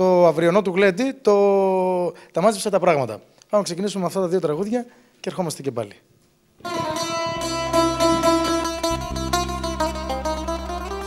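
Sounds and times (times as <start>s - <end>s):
bass notes: 6.6s - 11.0s
folk band playing: 6.6s - 11.0s
plucked lute melody: 6.6s - 11.0s.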